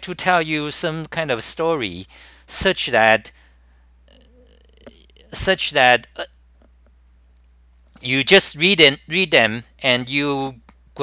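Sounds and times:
faint low hum: 0.0 - 11.0
man hiccup: 4.1 - 5.5, 6.1 - 6.4.

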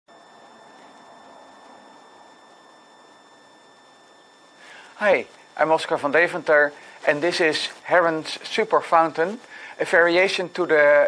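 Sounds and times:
faint background noise: 0.1 - 11.0.

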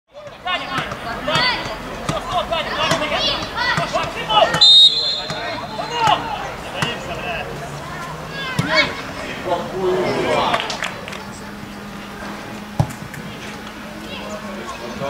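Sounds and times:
players shouting: 0.2 - 15.0
referee's whistle blast: 4.6 - 5.6.

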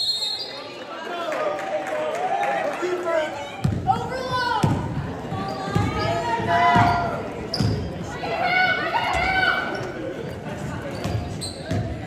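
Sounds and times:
voices echoing in gym: 0.0 - 12.0.

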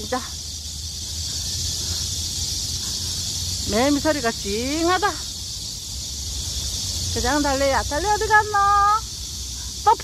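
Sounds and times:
cicadas buzzing: 0.0 - 10.0.

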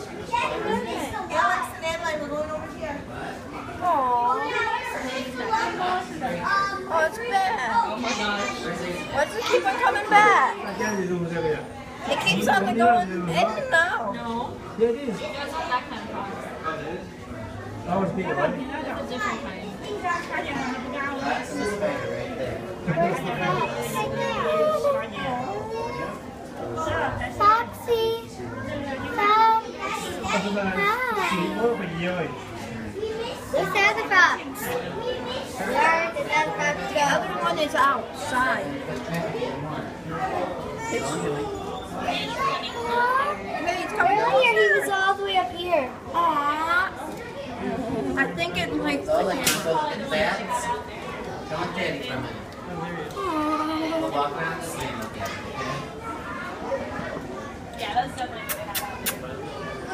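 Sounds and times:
children chattering: 0.0 - 59.9.

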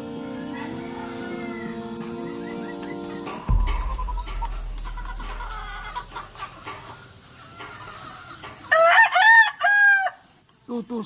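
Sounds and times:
rooster crowing: 0.2 - 2.7, 8.7 - 10.2.

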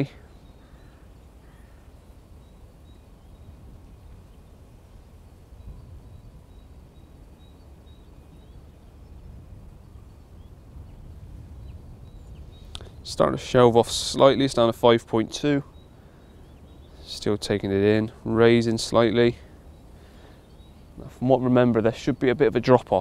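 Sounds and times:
steady low rumble: 0.1 - 22.6.

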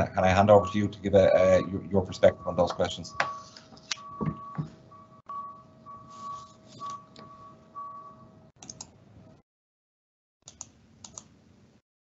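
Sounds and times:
low steady tone: 0.0 - 8.5
soft thumps: 4.2 - 4.8.

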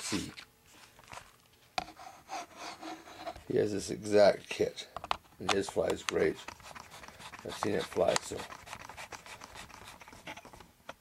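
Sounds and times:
handling scrapes: 5.7 - 10.6.

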